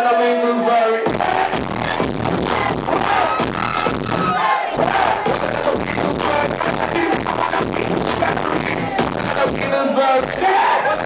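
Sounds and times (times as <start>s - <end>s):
loud live dance music: 0.0s - 11.0s
crowd shouting along: 1.1s - 11.0s.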